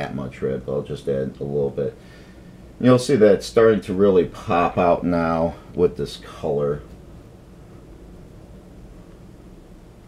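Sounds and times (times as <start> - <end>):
faint hiss: 0.0 - 10.0
room tone hum: 0.0 - 10.0.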